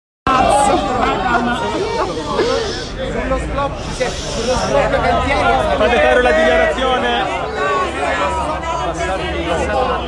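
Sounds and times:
crowd talking: 0:00.3 - 0:10.0.

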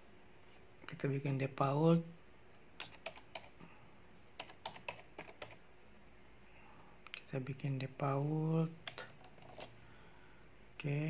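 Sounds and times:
laptop keyboard keystrokes: 0:02.8 - 0:03.6, 0:04.4 - 0:05.6, 0:08.8 - 0:09.7.

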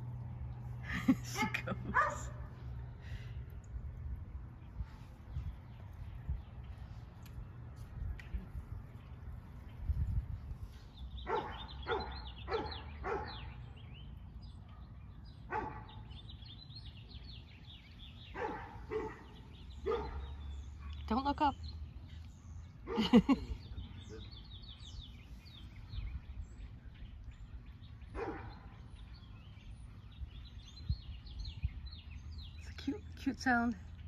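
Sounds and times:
dog yipping: 0:01.9 - 0:02.3, 0:18.3 - 0:20.2
wind rumble on microphone: 0:03.3 - 0:11.8, 0:24.8 - 0:32.8.

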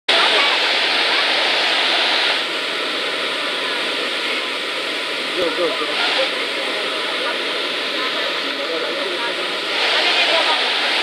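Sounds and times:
waterfall rushing: 0:00.1 - 0:11.0.

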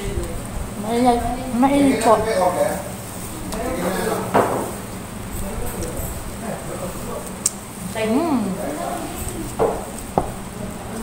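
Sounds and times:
murmur of voices: 0:00.0 - 0:11.0
knock: 0:04.3 - 0:04.7, 0:09.6 - 0:10.4.

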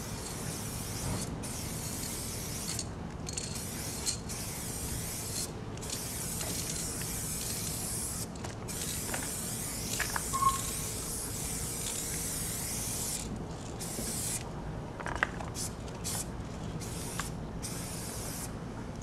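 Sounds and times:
spray-paint can hissing: 0:00.0 - 0:14.4, 0:15.6 - 0:18.5.

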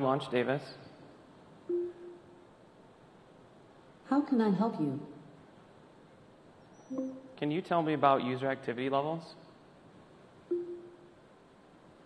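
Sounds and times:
short single-pitched tone: 0:01.7 - 0:02.4, 0:06.9 - 0:07.4, 0:10.5 - 0:11.0.

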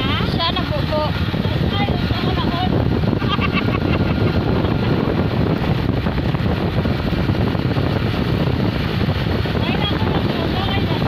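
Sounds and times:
road noise: 0:00.0 - 0:11.0
vehicle engine rumble: 0:00.0 - 0:11.0
wind buffeting microphone: 0:00.0 - 0:11.0.

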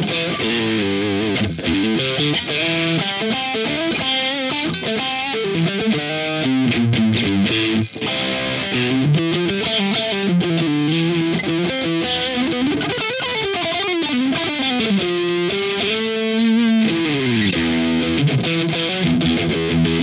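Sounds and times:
overdriven electric guitar: 0:00.0 - 0:20.0.

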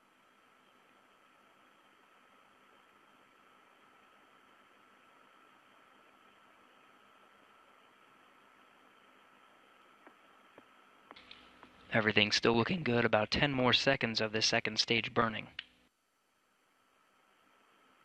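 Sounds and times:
faint steady hiss: 0:00.0 - 0:18.0.

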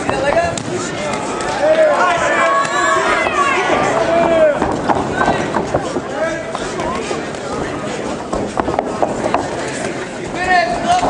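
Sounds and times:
crowd shouting: 0:01.0 - 0:05.6.

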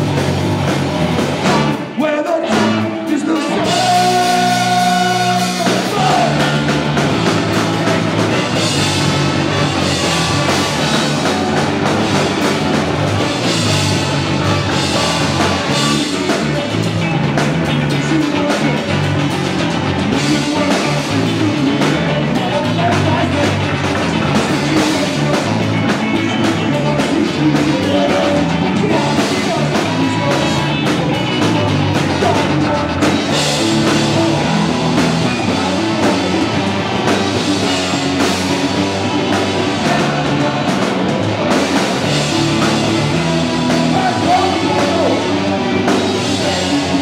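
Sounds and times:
live punk band with horns: 0:00.0 - 0:47.0.

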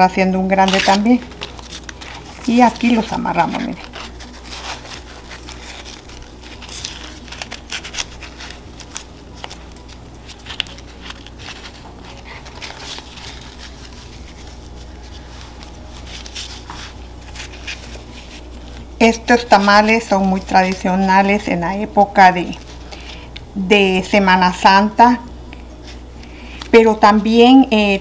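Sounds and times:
dried corn husks crinkling: 0:00.5 - 0:23.4.

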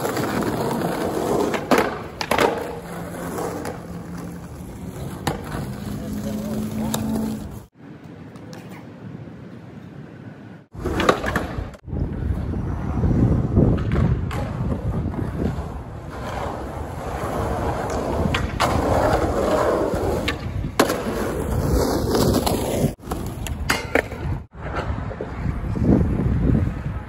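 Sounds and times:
skateboard clacks: 0:00.0 - 0:07.5
skateboard wheels rolling on concrete: 0:00.0 - 0:27.0.

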